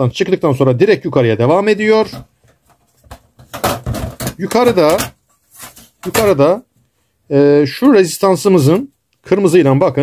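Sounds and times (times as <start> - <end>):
man speaking: 0.0 - 2.3, 4.2 - 5.2, 6.0 - 6.7, 7.3 - 10.0.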